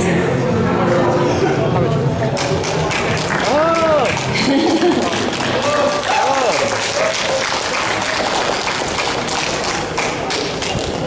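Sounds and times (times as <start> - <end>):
audience clapping: 2.4 - 11.0.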